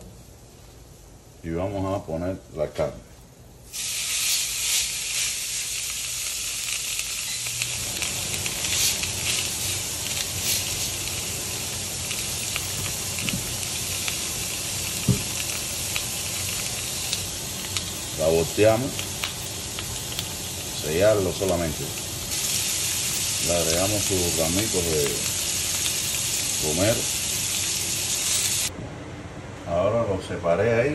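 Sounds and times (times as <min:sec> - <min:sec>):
meat sizzling on a grill pan: 0:03.7 - 0:28.7
small pops and crackles: 0:06.6 - 0:18.1.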